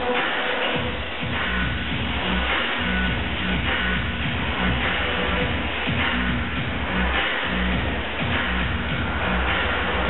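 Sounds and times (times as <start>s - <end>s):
music with heavy bass line: 0.0s - 10.0s.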